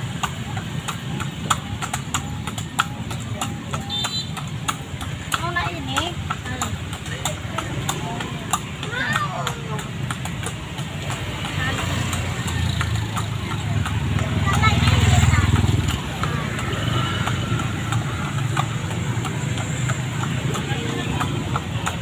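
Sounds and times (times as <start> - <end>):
horse hooves clip-clopping on road: 0.0 - 22.0
street noise: 0.0 - 22.0.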